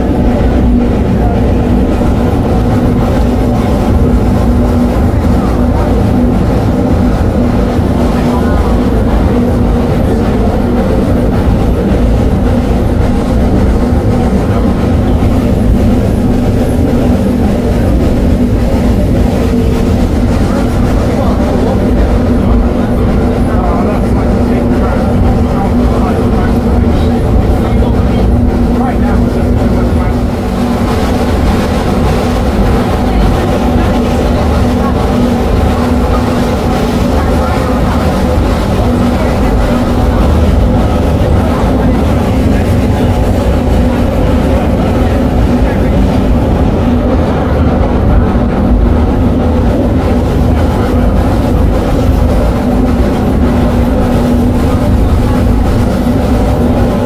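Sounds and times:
steam locomotive engine beats: 0.0 - 57.0.

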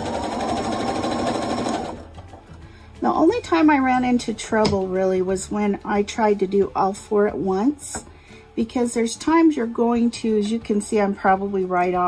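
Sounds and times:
sewing machine stitching: 0.0 - 2.1.

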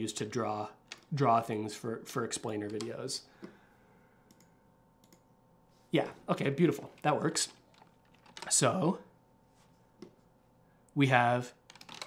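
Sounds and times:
computer clicks: 4.3 - 5.3.

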